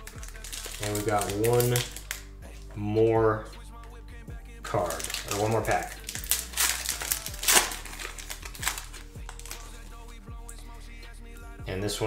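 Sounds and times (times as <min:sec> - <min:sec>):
wrapper tearing and crinkling: 0:00.0 - 0:02.7, 0:04.8 - 0:10.0.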